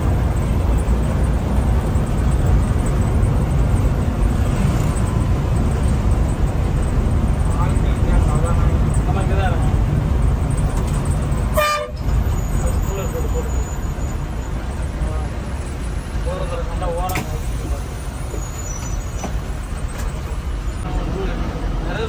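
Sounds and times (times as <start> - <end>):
bus engine and road rumble: 0.0 - 22.0
horn toot: 11.5 - 12.1.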